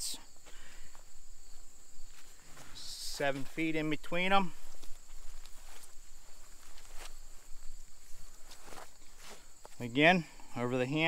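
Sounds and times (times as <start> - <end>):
high insect drone: 0.0 - 11.0
rope rustling in hands: 4.5 - 9.8.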